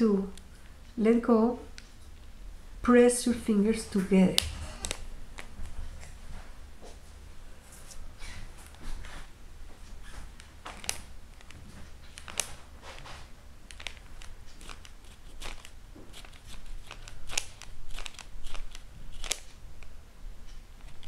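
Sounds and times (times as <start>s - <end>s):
paper crackling and rustling: 7.8s - 19.6s.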